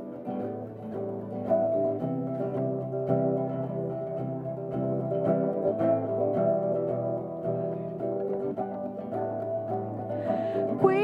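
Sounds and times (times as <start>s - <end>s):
acoustic guitar: 0.0s - 11.0s.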